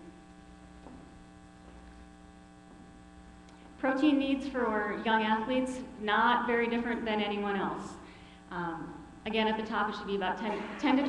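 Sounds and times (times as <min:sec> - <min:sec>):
electrical mains hum: 0:00.0 - 0:11.0
woman speaking: 0:03.8 - 0:11.0.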